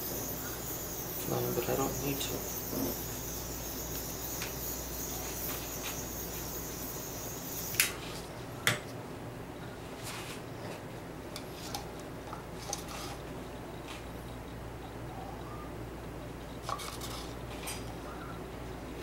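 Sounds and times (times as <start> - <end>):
butane torch hissing: 0.0 - 8.0.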